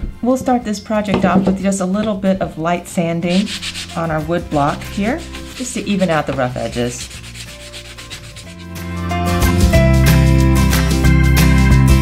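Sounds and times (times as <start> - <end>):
sanding block scratching wood: 3.3 - 8.8.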